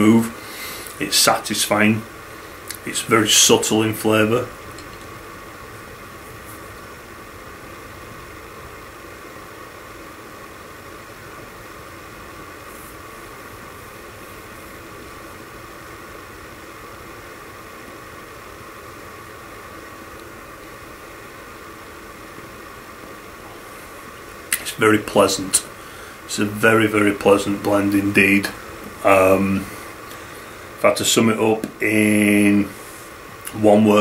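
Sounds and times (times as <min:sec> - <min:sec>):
faint hum: 0:00.0 - 0:34.0
steady hiss: 0:00.0 - 0:34.0.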